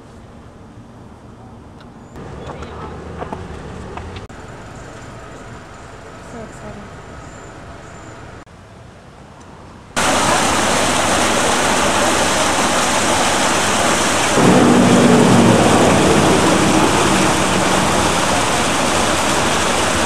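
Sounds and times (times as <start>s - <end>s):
waterfall rushing over rocks: 10.0s - 20.0s.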